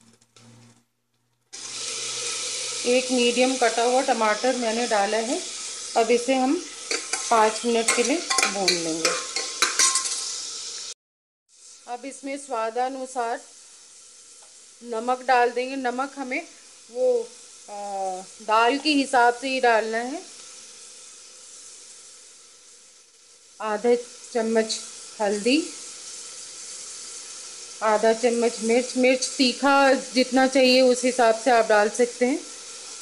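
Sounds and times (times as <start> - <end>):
vegetables sizzling in hot fat: 1.5 - 33.0
woman speaking: 2.8 - 5.4, 6.0 - 6.7, 7.3 - 9.1, 11.9 - 13.4, 14.8 - 20.3, 23.6 - 25.7, 27.8 - 32.5.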